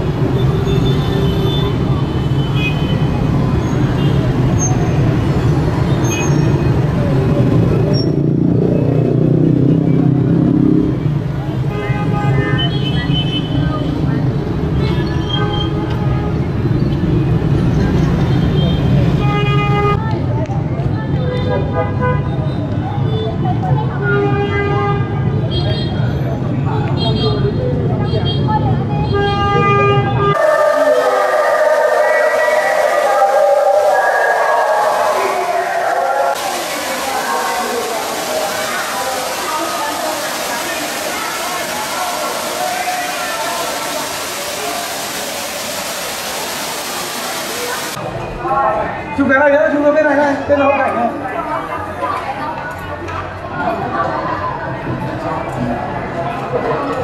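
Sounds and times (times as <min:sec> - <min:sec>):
road traffic rumbling: 0:00.0 - 0:21.8, 0:27.6 - 0:49.2
murmur of voices: 0:17.6 - 0:57.0
water running down wall fountain: 0:34.6 - 0:48.0.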